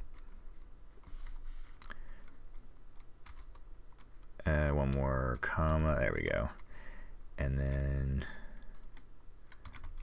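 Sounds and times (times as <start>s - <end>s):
keyboard keystrokes: 2.5s - 4.3s.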